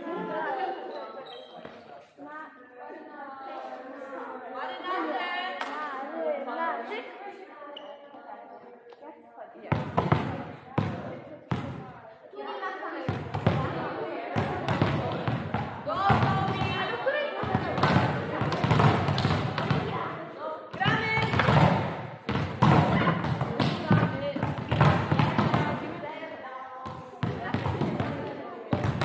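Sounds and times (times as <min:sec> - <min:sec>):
volleyballs struck by hand: 0:09.7 - 0:11.8, 0:13.1 - 0:20.1, 0:20.8 - 0:26.0
balls bouncing on hall floor: 0:09.7 - 0:12.0, 0:13.0 - 0:26.2, 0:26.8 - 0:29.0.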